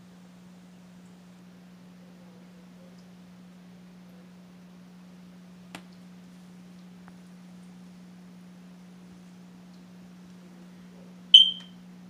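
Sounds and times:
faint low hum: 0.0s - 12.0s
high-pitched electronic beep: 11.4s - 11.7s.

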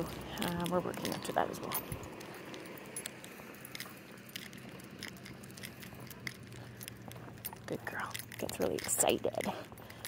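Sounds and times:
leash clip and collar clinks: 0.0s - 10.0s
low steady hum: 0.0s - 10.0s.

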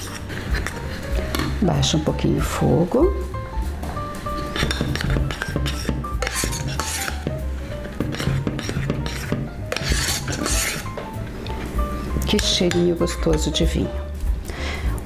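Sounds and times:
metal spoon scraping saucepan: 0.0s - 1.6s, 4.3s - 11.6s, 12.2s - 13.6s
background music: 0.0s - 15.0s.

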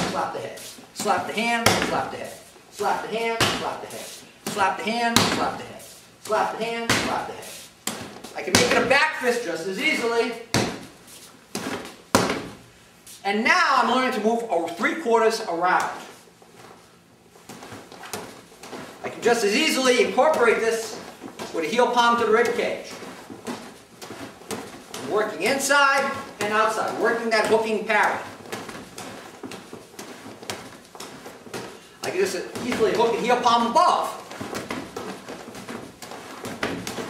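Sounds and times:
hands slapping punching bag: 1.0s - 2.3s, 3.3s - 5.7s, 6.3s - 9.0s, 10.5s - 12.6s, 20.0s - 37.0s.

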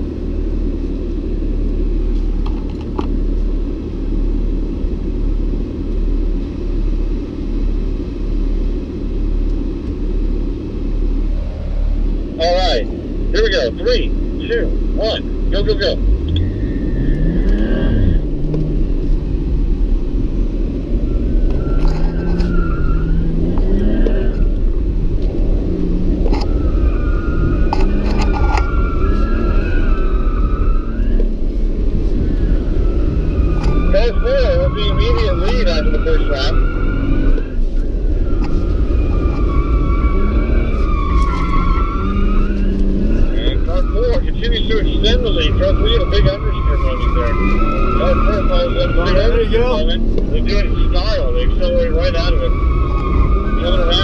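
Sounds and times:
car engine revving: 0.0s - 54.0s
tyres squealing: 32.3s - 54.0s.

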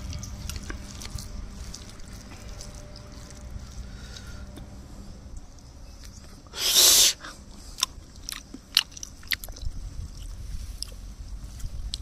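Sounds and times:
open-mouthed chewing: 0.0s - 4.6s, 5.3s - 12.0s
person slurping food: 6.5s - 7.4s.

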